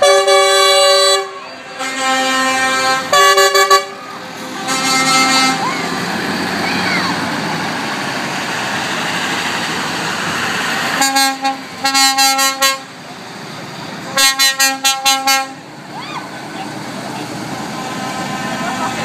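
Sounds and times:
lorry air horn blasts: 0:00.0 - 0:05.8, 0:11.0 - 0:12.9, 0:14.2 - 0:15.6
lorry driving past: 0:01.2 - 0:11.8.

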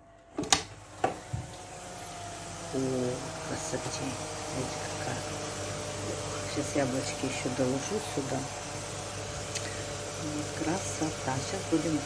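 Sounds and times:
oven humming: 0:00.0 - 0:12.0.

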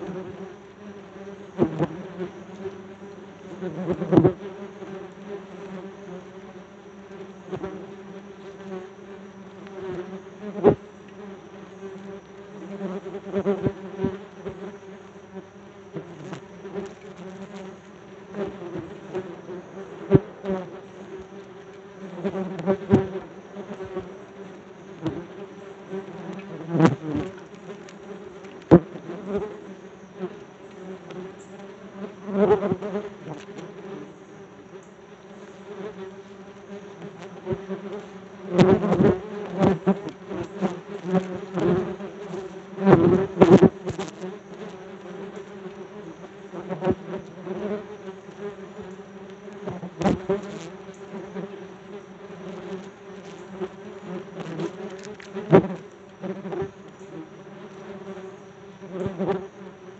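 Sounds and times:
wasps buzzing: 0:00.0 - 0:59.9.

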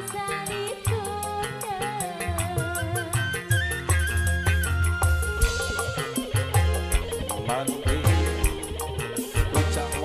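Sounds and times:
woman singing into a microphone: 0:00.0 - 0:04.2
live band playing: 0:00.0 - 0:10.0.

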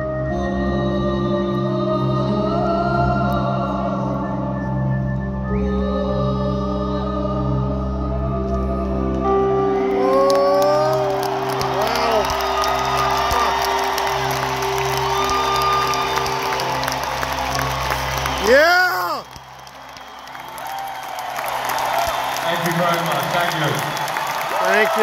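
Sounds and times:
loud whoop: 0:09.9 - 0:22.5, 0:23.7 - 0:25.0
applause: 0:10.0 - 0:25.0
crowd cheering and whooping: 0:10.0 - 0:25.0.

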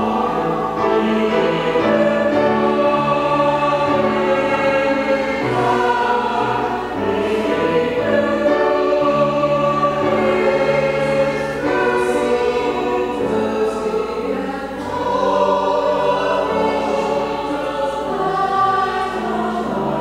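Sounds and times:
group singing a hymn: 0:00.0 - 0:20.0.

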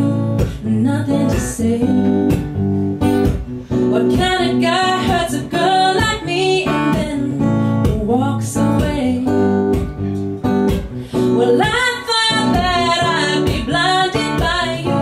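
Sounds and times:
woman singing: 0:00.0 - 0:02.6, 0:03.7 - 0:09.9, 0:11.1 - 0:15.0
strummed acoustic guitar: 0:00.0 - 0:15.0.

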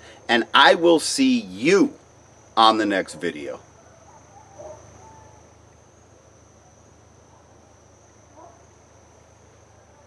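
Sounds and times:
high-pitched insect trill: 0:00.0 - 0:10.0.

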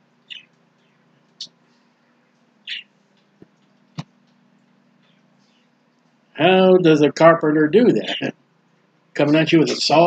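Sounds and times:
bird chirping: 0:00.2 - 0:01.6, 0:02.6 - 0:03.0, 0:07.8 - 0:08.3, 0:09.2 - 0:10.0.

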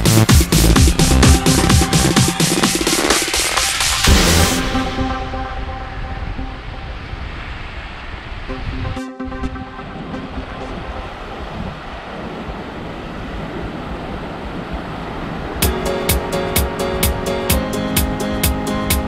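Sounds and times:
electronic background music: 0:00.0 - 0:07.7, 0:08.3 - 0:11.8, 0:15.6 - 0:19.0
surf washing on beach: 0:00.5 - 0:19.0
music with plucked notes: 0:15.6 - 0:19.0.

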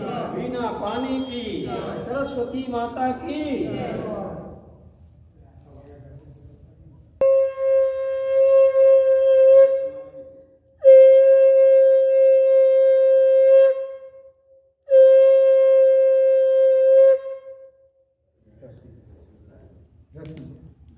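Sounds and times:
conch shell blasts: 0:07.2 - 0:14.2.

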